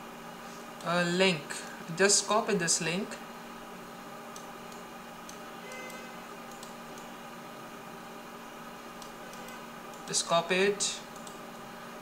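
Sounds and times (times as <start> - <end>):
computer mouse clicks: 4.3 - 7.1, 9.0 - 10.1, 11.1 - 11.4.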